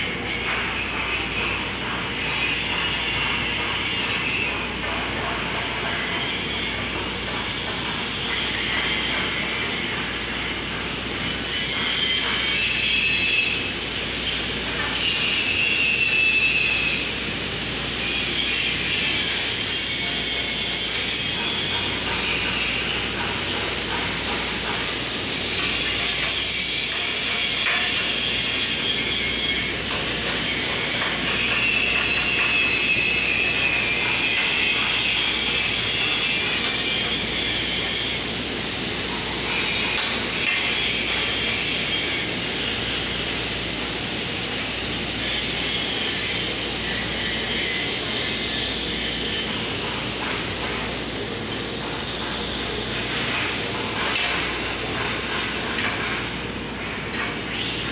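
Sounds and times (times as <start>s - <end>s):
grinder rasping on steel: 17.9s - 55.8s.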